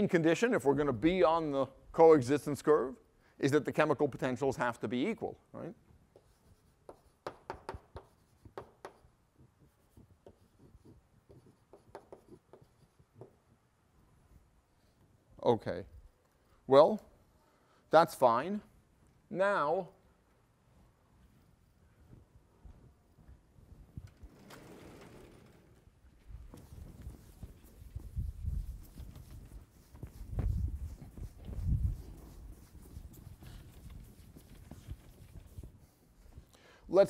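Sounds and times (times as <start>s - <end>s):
chalk on blackboard: 6.1s - 13.4s, 26.5s - 36.4s
knock: 7.2s - 9.0s
sliding chalkboard panel rumbling: 24.2s - 25.9s.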